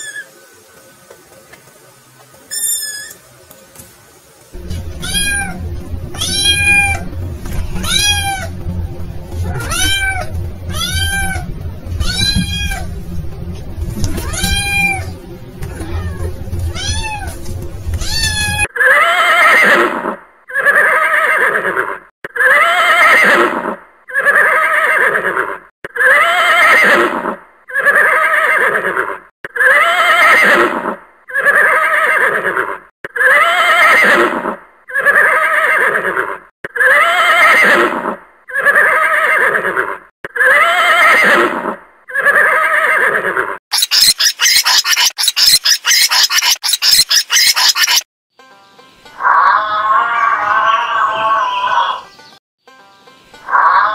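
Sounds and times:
horse whinnying: 0:18.0 - 0:43.6, 0:49.2 - 0:52.0.

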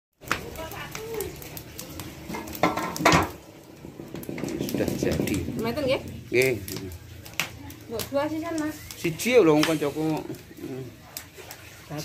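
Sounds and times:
dishes and pots clattering: 0:02.2 - 0:05.6.

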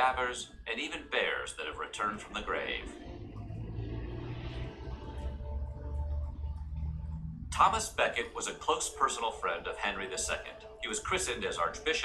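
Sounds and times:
whoosh transition effect: 0:02.6 - 0:08.3.

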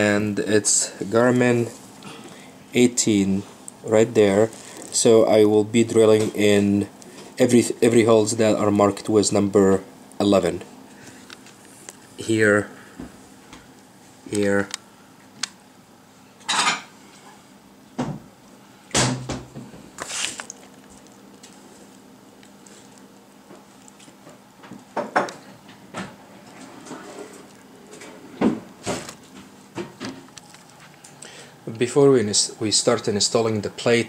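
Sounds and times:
paper template rustling: 0:20.0 - 0:22.0.

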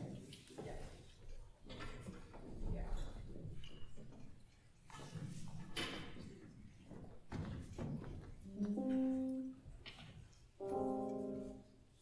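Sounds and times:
band instruments holding notes: 0:08.5 - 0:09.6, 0:10.6 - 0:11.6.

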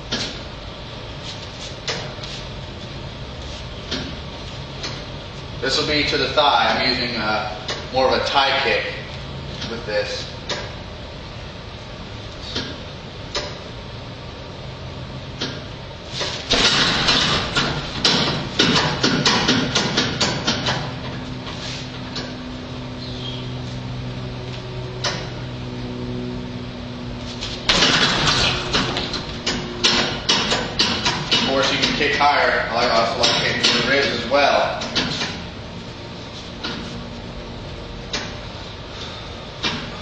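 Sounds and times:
kicks hitting heavy bag: 0:16.2 - 0:20.7, 0:27.6 - 0:31.8.

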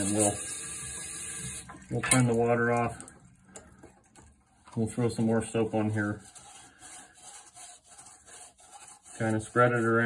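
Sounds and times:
handling scratches: 0:04.8 - 0:10.0.

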